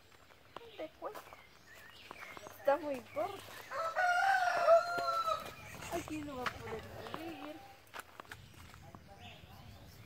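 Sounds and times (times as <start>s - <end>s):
rooster crowing: 3.7s - 5.6s.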